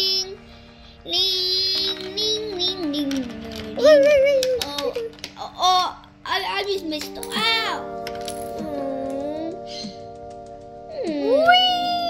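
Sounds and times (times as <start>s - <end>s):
music with long held chords: 0.0s - 12.0s
voice gliding in pitch: 7.0s - 12.0s.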